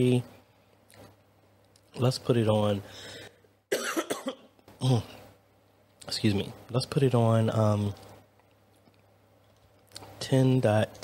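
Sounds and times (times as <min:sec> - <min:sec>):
man coughing: 0:03.7 - 0:05.1.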